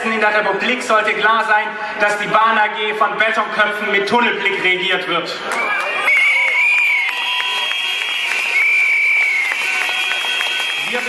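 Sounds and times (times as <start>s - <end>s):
crowd clapping and cheering: 5.4s - 11.0s
shrill whistles blowing: 6.1s - 11.0s.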